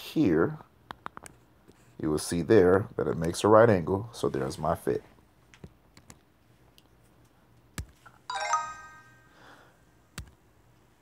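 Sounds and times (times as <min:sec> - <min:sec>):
bright electronic chime: 0:08.3 - 0:09.6.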